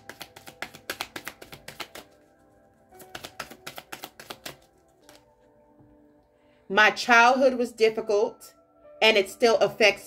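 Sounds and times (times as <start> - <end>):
cards being shuffled: 0.0 - 5.3
soft background music: 0.0 - 10.0.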